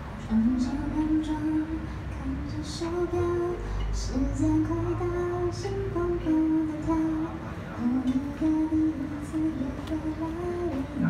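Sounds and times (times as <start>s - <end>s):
woman singing slow melody: 0.1s - 11.0s.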